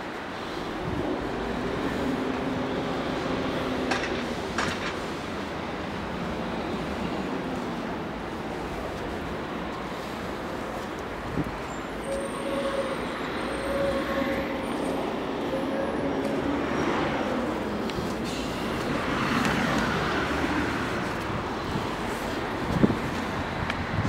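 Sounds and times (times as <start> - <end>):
road traffic noise: 0.0 - 24.0.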